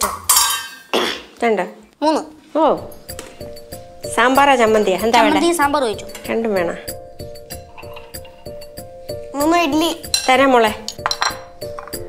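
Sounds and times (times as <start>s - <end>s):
clinking of steel bowl and dishes: 0.1s - 1.1s, 7.5s - 8.5s, 10.0s - 12.0s.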